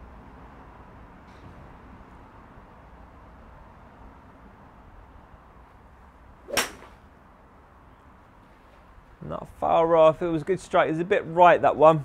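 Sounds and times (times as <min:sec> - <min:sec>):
golf club striking ball: 0:06.4 - 0:07.1.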